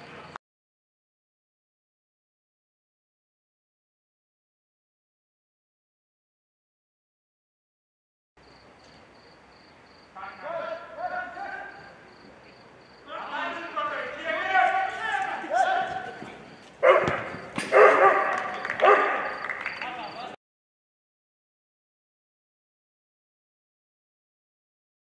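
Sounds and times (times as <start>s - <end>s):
players shouting and calling: 10.2s - 20.4s
ball being kicked: 15.8s - 17.9s.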